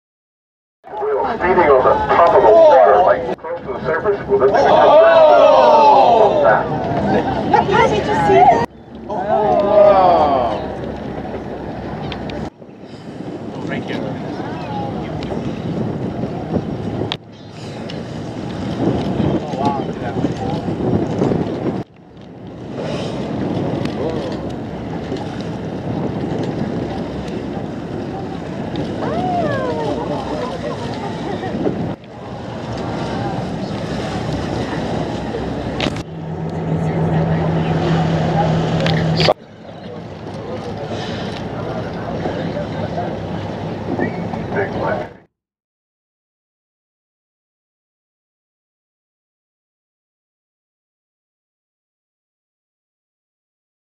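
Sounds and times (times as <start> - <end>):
faint voices: 0.9 - 17.0, 22.8 - 45.3
sea water sloshing: 0.9 - 45.1
low engine-like hum: 1.0 - 15.4, 21.8 - 45.3
wind buffeting microphone: 1.0 - 45.3.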